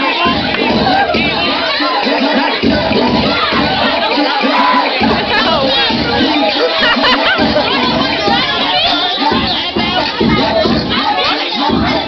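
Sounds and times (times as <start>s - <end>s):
crowd shouting and cheering: 0.0s - 12.0s
repeating low rhythm: 0.1s - 12.0s.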